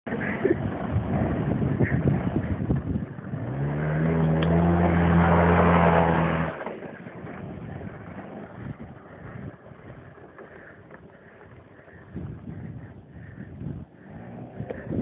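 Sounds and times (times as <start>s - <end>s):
scooter engine revving: 0.1s - 15.0s.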